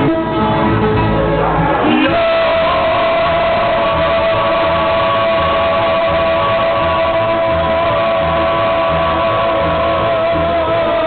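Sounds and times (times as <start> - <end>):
upright bass: 0.0 - 11.0
long held note: 0.1 - 10.7.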